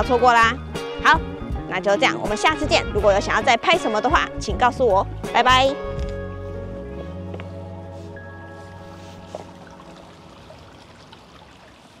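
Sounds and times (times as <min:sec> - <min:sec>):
running water: 0:08.8 - 0:12.0
water dripping: 0:09.3 - 0:12.0.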